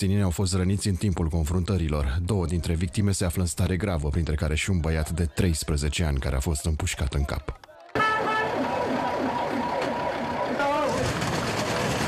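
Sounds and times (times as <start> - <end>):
crowd shouting: 7.5 - 11.4
ambulance siren: 8.0 - 11.5.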